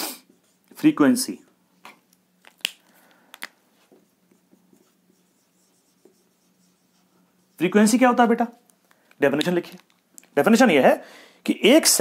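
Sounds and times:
faint steady hum: 0.0 - 12.0
marker pen on whiteboard: 3.7 - 8.7.

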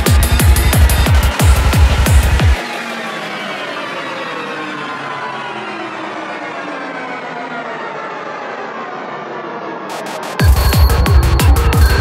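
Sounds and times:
layered synth texture: 6.6 - 12.0.

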